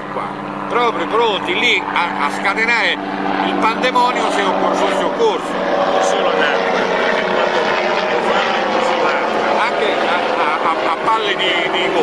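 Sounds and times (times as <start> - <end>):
steady mechanical drone: 0.0 - 12.0
voices: 0.0 - 12.0.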